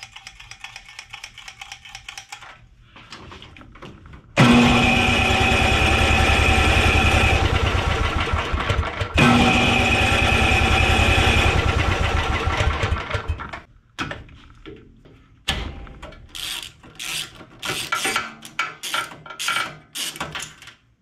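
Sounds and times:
engine cranking with electric starter: 0:04.4 - 0:13.6.

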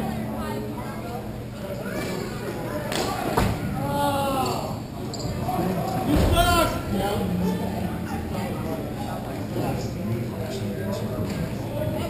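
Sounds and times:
thud: 0:06.1 - 0:06.7.

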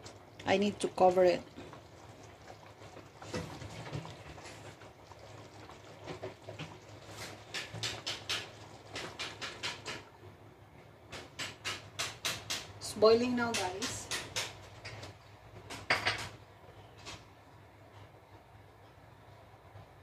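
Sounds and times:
curry bubbling in a pan: 0:00.0 - 0:10.3.

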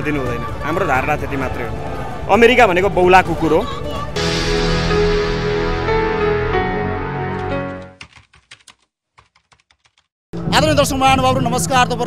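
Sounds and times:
intro music: 0:04.2 - 0:08.0
keyboard typing clicks: 0:07.4 - 0:10.1.

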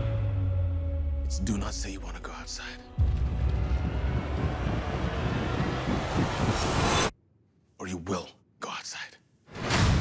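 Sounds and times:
loud low rumble: 0:03.0 - 0:07.1.

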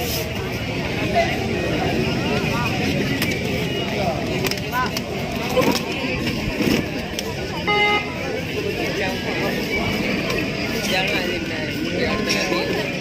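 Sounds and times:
crowd voices talking and calling out: 0:00.0 - 0:13.0.

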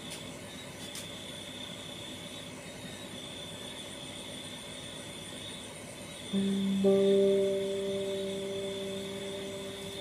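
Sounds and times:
plucked guitar notes ringing: 0:06.4 - 0:10.0.

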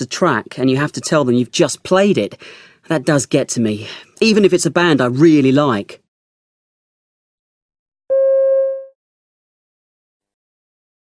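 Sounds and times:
electronic beep: 0:08.1 - 0:08.9.

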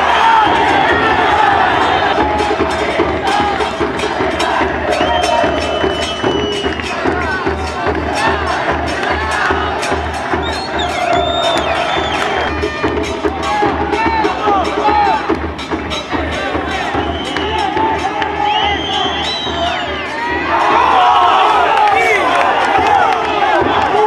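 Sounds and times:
crowd chanting and cheering: 0:00.0 - 0:24.0
repeating drum beat: 0:00.0 - 0:24.0.

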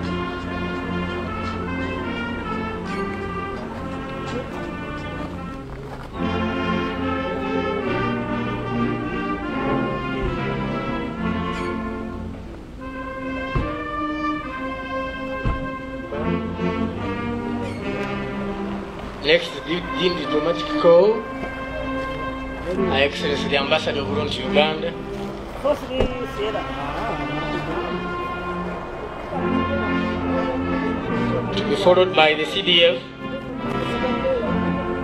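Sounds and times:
brass band playing held chords: 0:00.0 - 0:35.0
low thumps: 0:10.0 - 0:14.2, 0:15.3 - 0:20.0.

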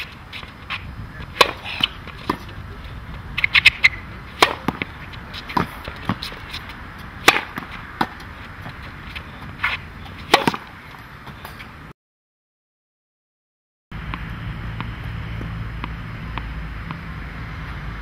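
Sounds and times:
tennis racket hitting ball: 0:00.0 - 0:02.6, 0:03.4 - 0:11.7, 0:14.1 - 0:17.1.

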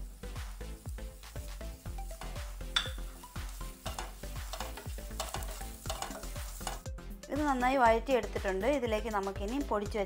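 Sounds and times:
light sizzle: 0:00.0 - 0:06.9
wooden spatula scraping a pan: 0:03.2 - 0:06.8.

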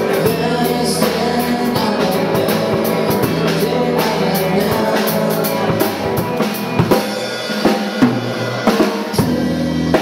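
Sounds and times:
rock band music: 0:00.0 - 0:10.0.

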